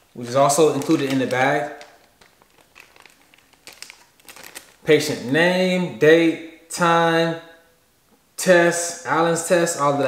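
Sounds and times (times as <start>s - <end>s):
plastic bag crinkling: 0.2s - 5.4s.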